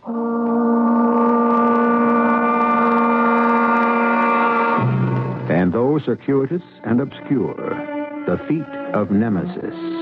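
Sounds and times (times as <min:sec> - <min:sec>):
sustained dramatic music chord: 0:04.8 - 0:08.4.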